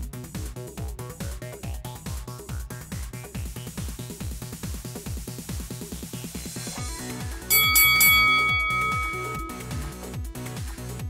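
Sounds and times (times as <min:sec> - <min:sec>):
loud bell chime: 0:07.5 - 0:09.8.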